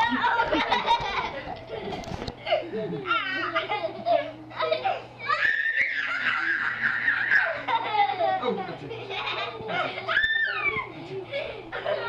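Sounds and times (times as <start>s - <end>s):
children laughing: 0.0s - 12.0s
child's high-pitched squeal: 5.2s - 7.6s.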